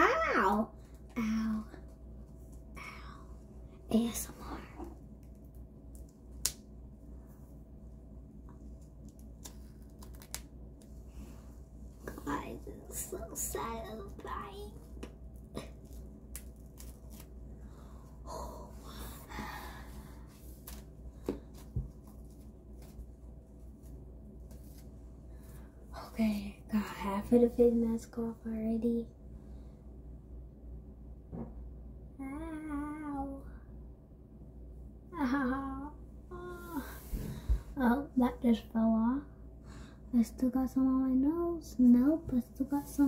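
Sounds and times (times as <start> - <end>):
face mask peeling off skin: 8.8 - 10.5, 15.8 - 17.4.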